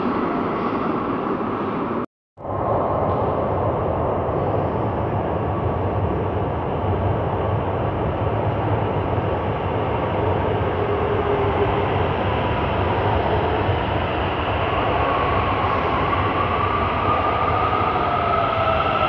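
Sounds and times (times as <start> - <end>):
metro train rumble: 0.0 - 19.0
train whine rising in pitch: 10.1 - 19.0.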